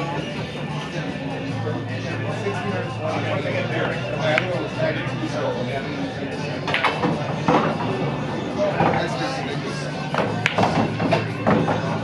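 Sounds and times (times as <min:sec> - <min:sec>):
background voices murmuring: 0:00.0 - 0:12.0.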